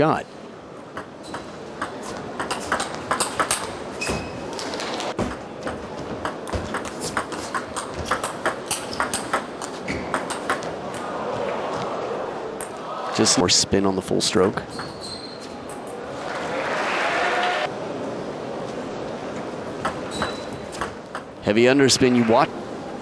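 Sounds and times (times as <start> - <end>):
crowd noise: 0.0 - 23.0.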